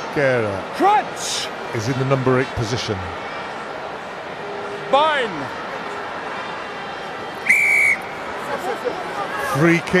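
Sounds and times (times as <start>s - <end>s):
stadium crowd noise: 0.0s - 10.0s
referee's whistle blast: 7.4s - 8.1s.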